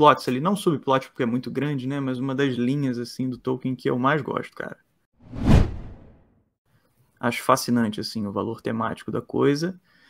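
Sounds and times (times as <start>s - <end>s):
whoosh: 5.2s - 6.2s.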